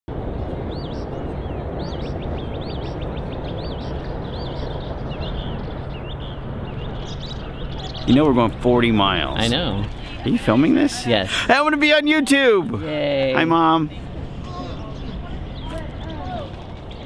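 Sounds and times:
birds chirping: 0.1s - 17.0s
constant low hum: 0.1s - 17.0s
outdoor background noise: 0.1s - 17.0s.

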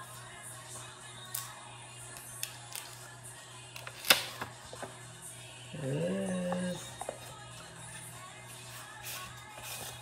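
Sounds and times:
person humming: 5.5s - 7.1s.

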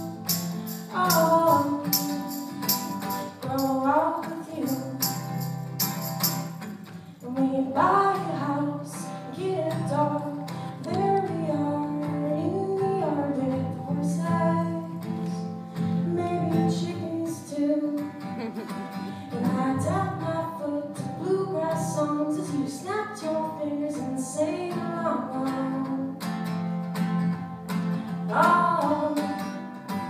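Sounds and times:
person singing wordless melody: 0.0s - 5.4s
acoustic guitar strumming: 0.0s - 23.0s, 25.0s - 30.0s.

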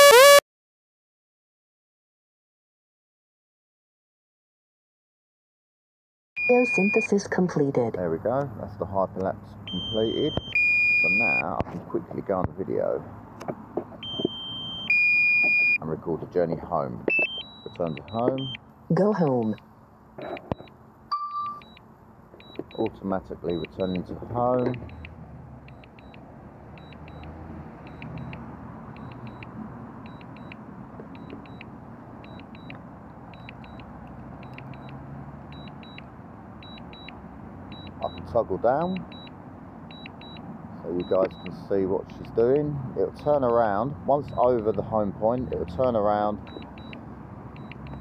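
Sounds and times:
electronic warning beep: 0.0s - 0.4s, 6.4s - 7.1s, 9.7s - 11.5s, 14.0s - 15.8s, 17.0s - 18.6s, 20.4s - 21.8s, 22.4s - 25.1s, 25.7s - 26.2s, 26.8s - 28.4s, 29.0s - 41.7s, 44.2s - 44.7s, 46.4s - 47.0s, 47.6s - 48.0s
short high warning beeps: 0.0s - 0.4s, 6.4s - 7.1s, 9.7s - 11.4s, 17.1s - 18.6s
road traffic noise: 6.4s - 48.0s.

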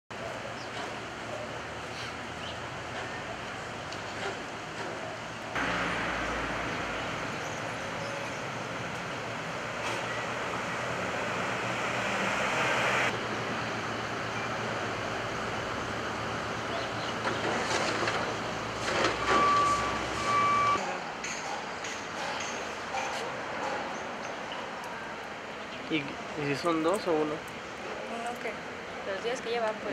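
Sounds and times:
road noise: 0.1s - 29.9s
short beeps: 19.2s - 20.8s.

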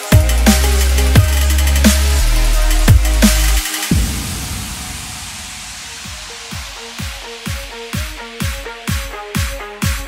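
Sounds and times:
hissing noise sweep: 0.5s - 7.5s
sudden hit: 2.9s - 7.2s.

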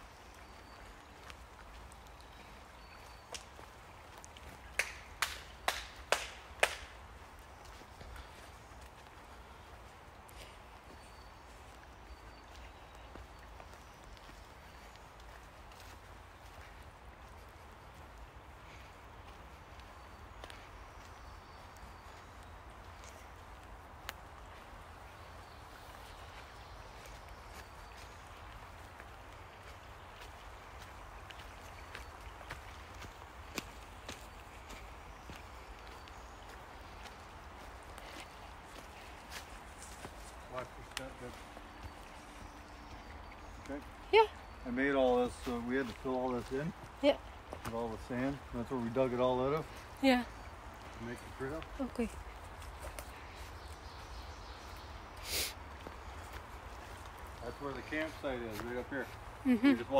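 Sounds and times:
footsteps on forest trail: 0.0s - 59.9s.

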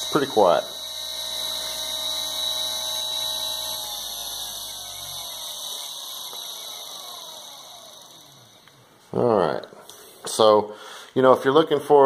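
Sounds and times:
electric motor whine: 0.0s - 9.0s.

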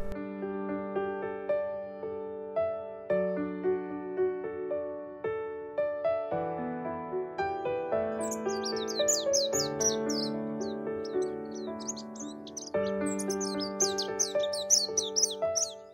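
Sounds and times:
electric piano music: 8.0s - 15.9s
rapid bird chirps: 8.2s - 15.9s.

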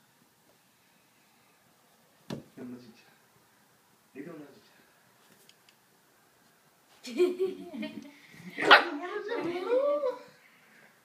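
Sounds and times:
puppy barking: 8.6s - 9.0s.

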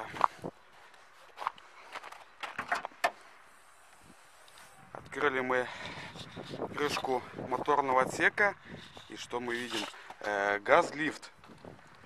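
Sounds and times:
car hood catch clicks and knocks: 2.4s - 3.2s.

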